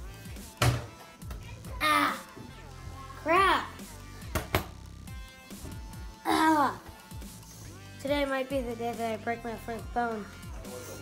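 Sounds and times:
background music: 0.0s - 11.0s
child's voiced sound: 1.6s - 2.3s, 3.1s - 3.8s, 6.3s - 6.9s.

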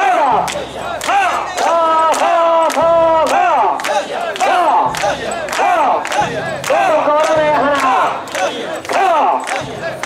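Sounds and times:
people shouting a rhythmic chant: 0.0s - 10.0s
sharp clacks: 0.0s - 10.0s.

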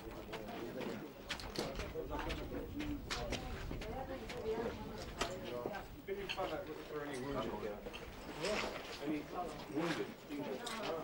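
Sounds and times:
crowd of people talking: 0.0s - 11.0s.

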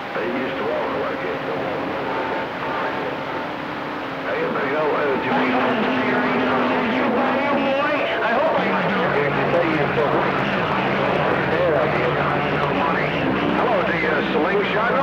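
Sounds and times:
low hum tones: 0.0s - 15.0s
garbled radio voices: 0.1s - 15.0s
radio static: 4.2s - 15.0s.

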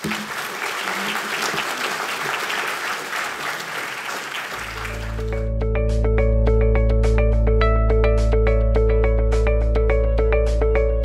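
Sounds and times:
audience applauding: 0.0s - 5.5s
deep bass tone: 4.9s - 11.0s.

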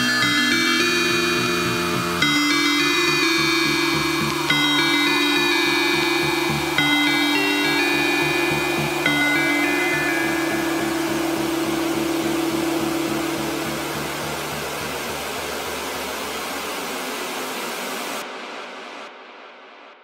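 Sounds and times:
pulsing bass: 0.0s - 16.9s
high held synth notes: 0.0s - 18.2s
hiss-like wash of noise: 1.0s - 19.4s.

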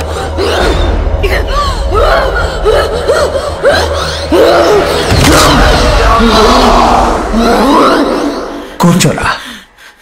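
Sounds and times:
low rumbling film score: 0.0s - 10.0s.

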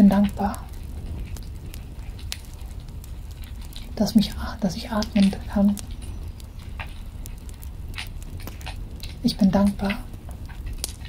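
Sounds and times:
low steady rumble: 0.0s - 11.0s
wood fire crackling and popping: 0.0s - 11.0s.

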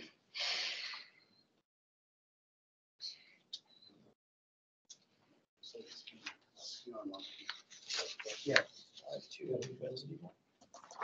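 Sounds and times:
paper rustling: 7.2s - 9.6s, 10.7s - 11.0s.

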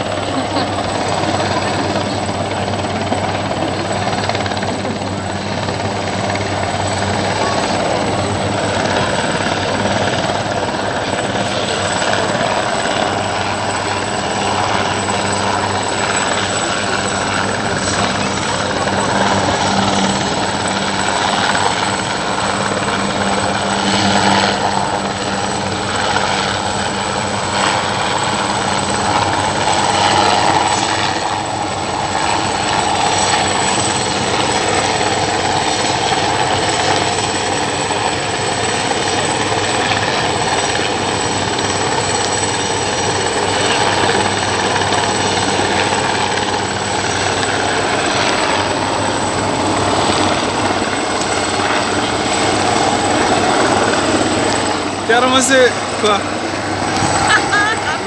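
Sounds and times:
helicopter hovering: 0.0s - 58.0s.

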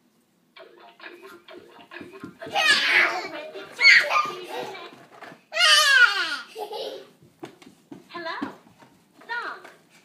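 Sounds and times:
toddler shouting and squealing: 5.5s - 6.5s.

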